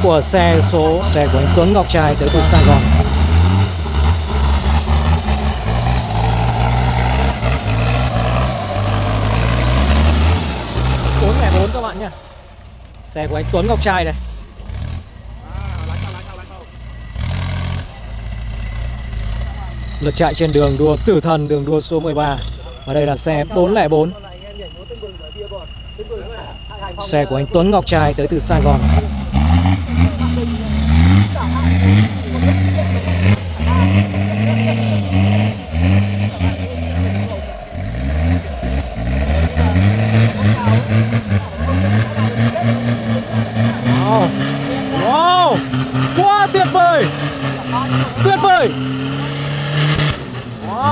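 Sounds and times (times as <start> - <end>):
off-road engine revving: 0.0 - 50.9.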